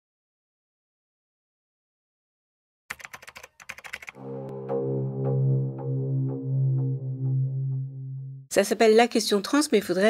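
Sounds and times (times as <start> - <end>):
keyboard typing clicks: 2.9 - 4.2.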